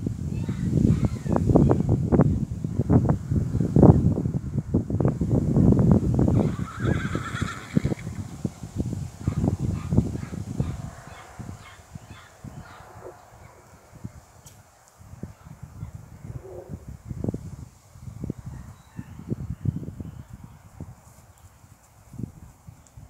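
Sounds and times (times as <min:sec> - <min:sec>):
horse whinnying: 0:06.3 - 0:08.2.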